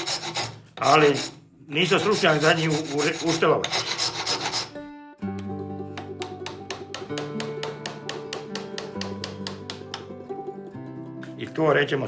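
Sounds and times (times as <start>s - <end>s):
hand tool rasping on wood: 0.0s - 4.8s.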